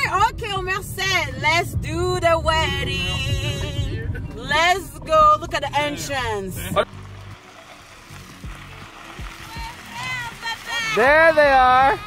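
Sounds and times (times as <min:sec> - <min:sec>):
low thumps: 0:00.0 - 0:07.4
tyres rolling over wet gravel: 0:06.8 - 0:12.0.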